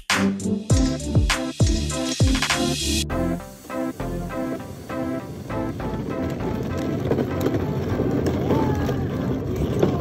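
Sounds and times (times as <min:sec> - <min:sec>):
background music: 0:00.0 - 0:08.6
plastic wheels rolling on concrete: 0:04.7 - 0:10.0.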